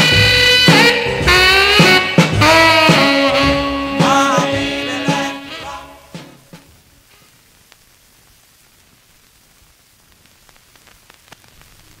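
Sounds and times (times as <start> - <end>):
record surface hiss: 0.0 - 12.0
record clicks and crackles: 7.0 - 12.0.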